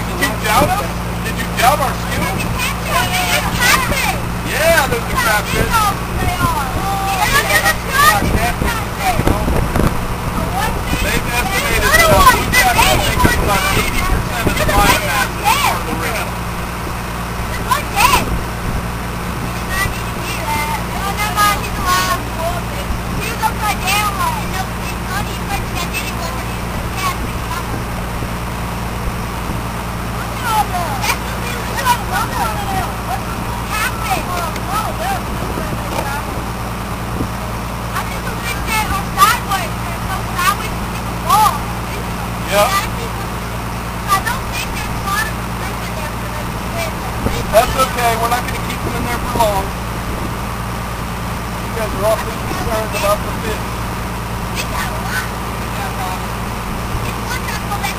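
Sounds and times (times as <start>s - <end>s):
boat engine idling: 0.0s - 57.9s
children chattering: 0.0s - 57.9s.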